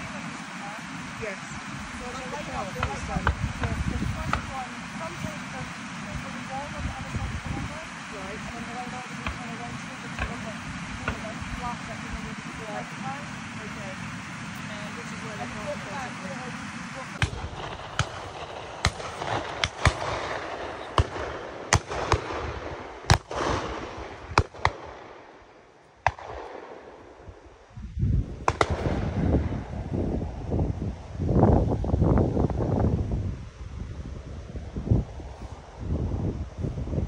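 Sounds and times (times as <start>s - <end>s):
wind buffeting microphone: 0.0s - 25.0s, 27.2s - 37.0s
shotgun shots: 17.2s - 25.3s, 26.0s - 27.0s, 28.5s - 29.2s.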